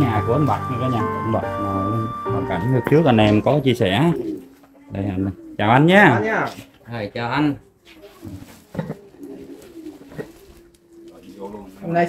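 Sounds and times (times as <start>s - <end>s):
dove cooing: 0.0s - 6.8s, 7.6s - 12.0s.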